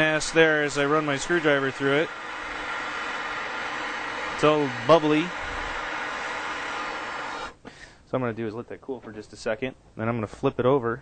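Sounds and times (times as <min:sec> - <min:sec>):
gas torch hissing: 0:00.0 - 0:07.7.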